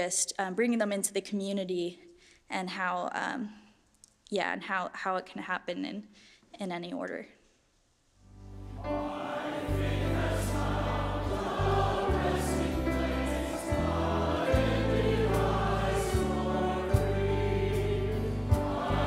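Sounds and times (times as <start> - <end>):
grand piano: 8.4 - 19.0
church choir singing a hymn: 8.7 - 19.0.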